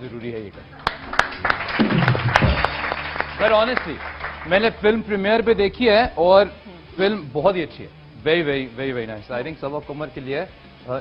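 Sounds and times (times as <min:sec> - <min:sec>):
audience applauding: 0:00.7 - 0:05.1.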